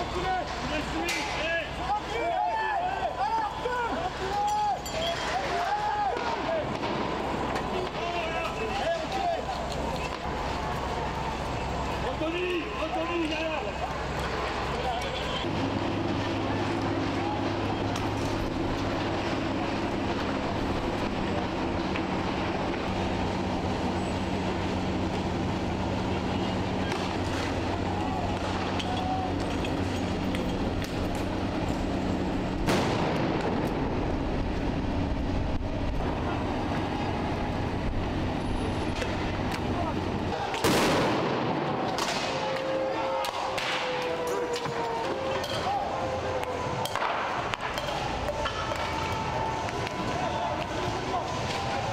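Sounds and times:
low mechanical hum: 0.0 - 51.9
loud blasts echoing: 32.5 - 35.2, 40.4 - 44.2.

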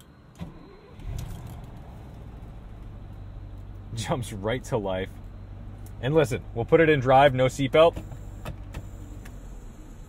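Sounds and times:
car engine starting and idling: 0.0 - 10.0.

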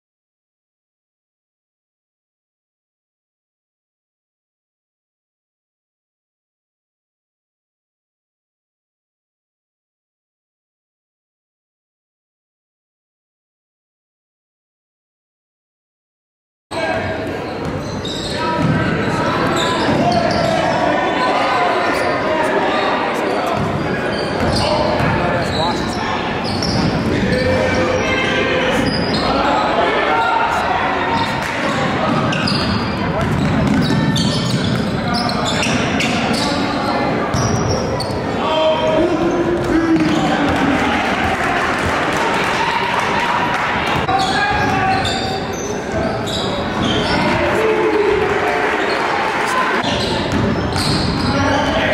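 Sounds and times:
echoing voices of players and crowd: 16.7 - 51.9
basketball bouncing on court: 18.6 - 18.9, 31.8 - 36.4, 49.8 - 51.4.

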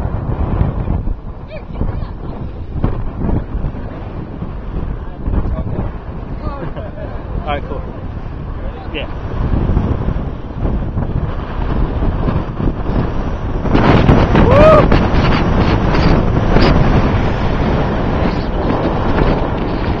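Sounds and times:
wind buffeting microphone: 0.0 - 20.0
person yelling: 14.4 - 14.9.

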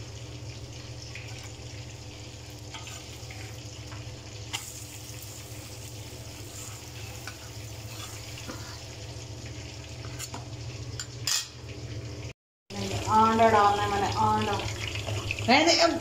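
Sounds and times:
food sizzling in hot oil: 0.0 - 16.0.

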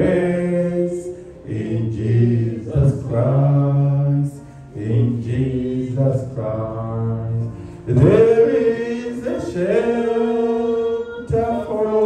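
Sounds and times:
man singing through microphone: 0.0 - 12.0.

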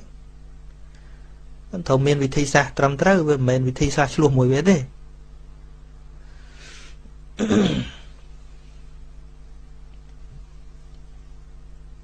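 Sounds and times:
quick breath in: 6.3 - 7.0
man clearing throat: 7.4 - 8.2.

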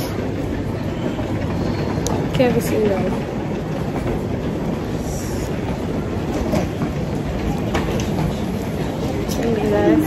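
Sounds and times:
steady rumbling background noise: 0.0 - 10.0.

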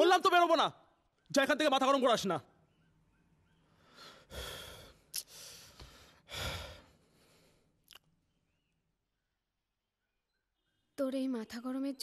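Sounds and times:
person sighing heavily: 3.9 - 7.0.

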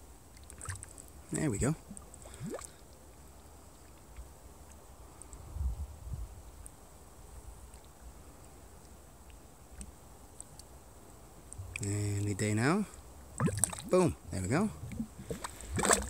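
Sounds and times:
mud bubbling: 0.4 - 3.2, 11.5 - 12.3, 13.3 - 16.0
wind rumbling on microphone: 5.2 - 8.2, 13.4 - 16.0.

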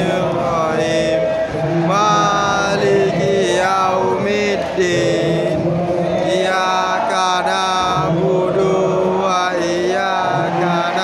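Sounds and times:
crowd singing a chant: 0.0 - 11.0.

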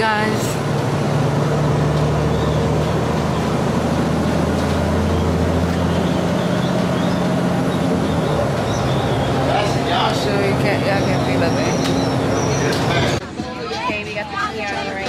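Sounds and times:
low engine drone: 0.0 - 13.6
road noise: 0.0 - 15.0.

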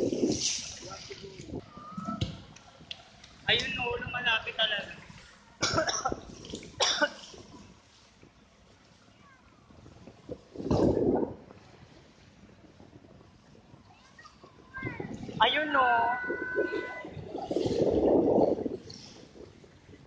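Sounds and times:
person coughing: 5.6 - 6.2, 6.8 - 7.2
people's voices: 13.9 - 17.9.

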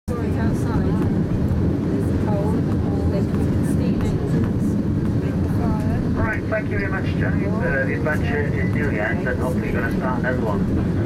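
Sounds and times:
faint voices talking: 0.1 - 11.0
railway carriage rumbling on track: 0.1 - 11.0.

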